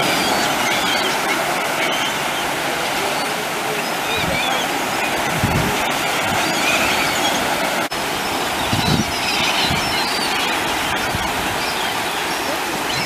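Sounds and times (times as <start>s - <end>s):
gulls calling: 0.0s - 13.0s
surf and churning water: 0.0s - 13.0s.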